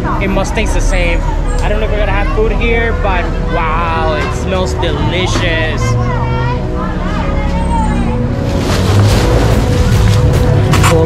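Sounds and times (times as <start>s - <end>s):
crowd voices chattering: 0.0s - 11.0s
low rumble of traffic: 0.0s - 11.0s.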